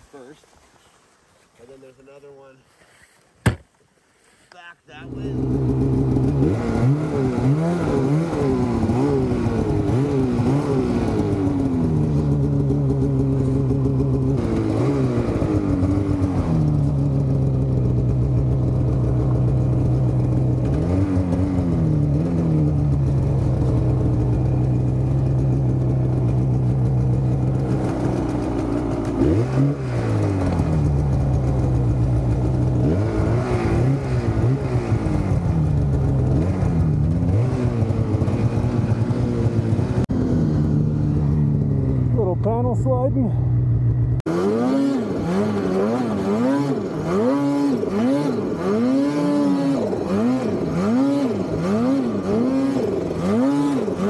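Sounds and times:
snowmobile engine revving: 4.9s - 54.0s.

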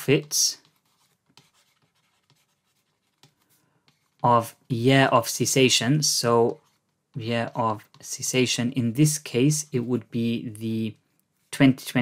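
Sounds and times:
pen tapping while writing: 0.6s - 4.2s.

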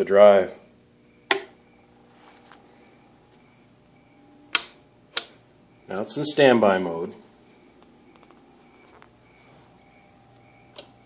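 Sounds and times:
faint steady hum: 0.0s - 11.0s
metal toggle switch clicks: 1.3s - 1.6s, 4.5s - 5.4s.

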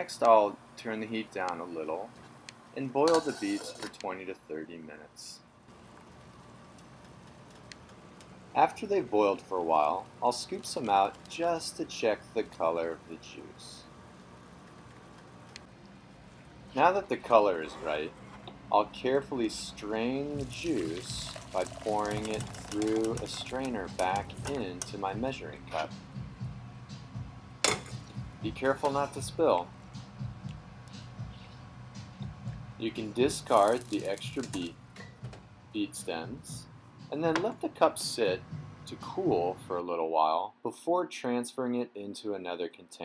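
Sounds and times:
faint low background noise: 0.0s - 43.0s
water bubbling in a saucepan: 20.4s - 24.7s.

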